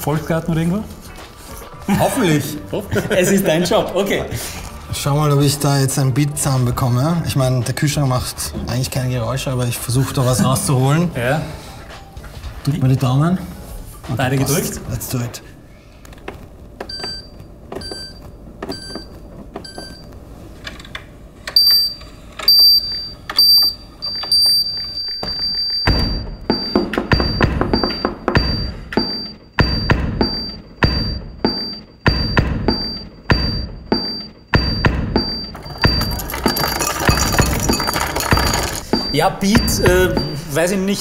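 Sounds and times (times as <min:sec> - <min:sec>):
refrigerator control panel beeps: 0:16.8 - 0:20.1, 0:21.5 - 0:35.9, 0:38.8 - 0:40.5.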